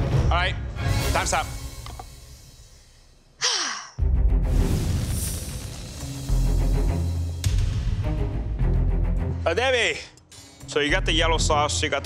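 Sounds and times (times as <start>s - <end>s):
dramatic background music: 0.0s - 3.4s, 4.0s - 12.0s
woman sighing: 3.4s - 4.0s.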